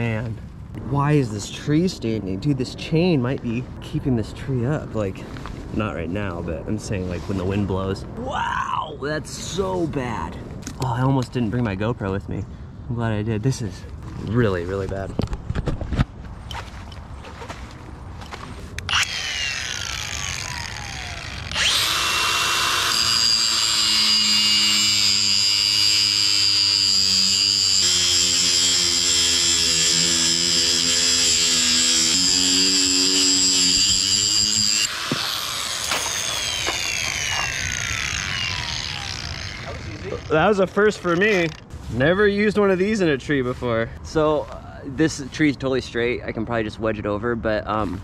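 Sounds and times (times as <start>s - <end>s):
angle grinder cutting steel chain: 18.9s - 41.7s.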